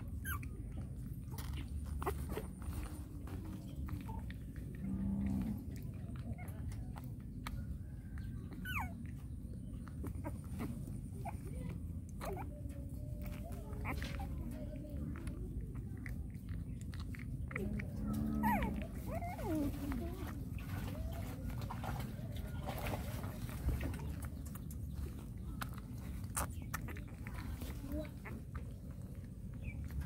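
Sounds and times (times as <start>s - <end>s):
puppy whining: 0.0s - 30.0s
puppy sucking from bottle: 5.6s - 30.0s.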